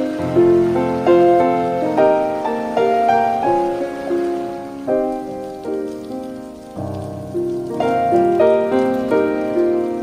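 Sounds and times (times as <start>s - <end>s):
piano chords: 0.0s - 10.0s
rain hissing: 0.0s - 10.0s.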